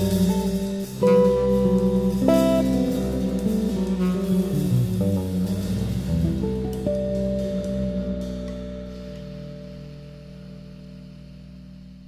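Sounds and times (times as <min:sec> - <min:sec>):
jazz group final chord: 0:00.0 - 0:11.6
double bass tones: 0:00.0 - 0:12.0
guitar tones: 0:00.0 - 0:12.0.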